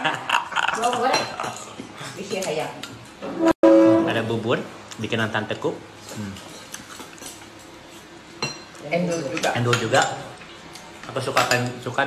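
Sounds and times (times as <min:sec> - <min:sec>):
loud steady held tone: 0:03.2 - 0:04.3.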